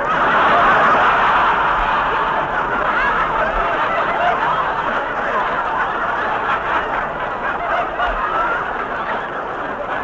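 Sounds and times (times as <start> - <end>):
audience laughing: 0.0 - 10.0.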